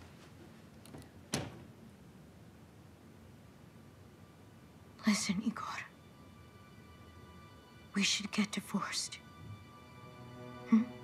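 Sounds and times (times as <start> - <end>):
woman whispering: 5.0 - 5.9, 8.0 - 9.2.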